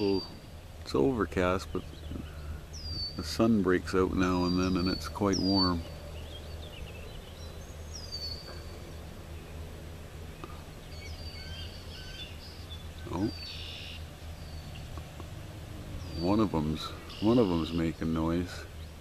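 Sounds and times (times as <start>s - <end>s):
birds whistling downward notes: 0.0s - 19.0s
breeze rumble: 0.0s - 19.0s
eaglet chittering call: 0.0s - 19.0s.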